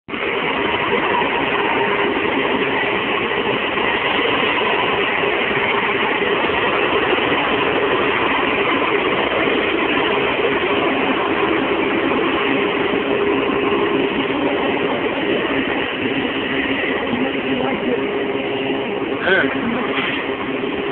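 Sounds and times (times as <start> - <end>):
heavy diesel engine running: 0.1 - 20.9.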